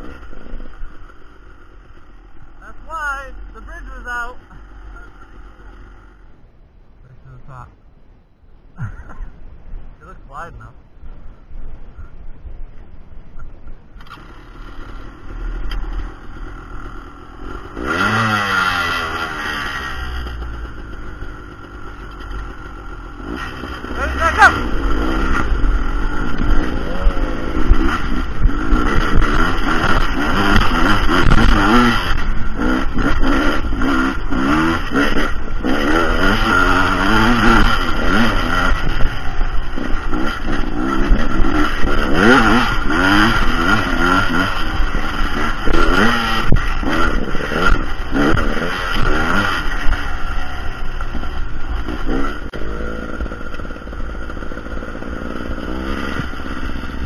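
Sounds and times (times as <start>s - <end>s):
dirt bike engine revving: 14.0s - 57.0s.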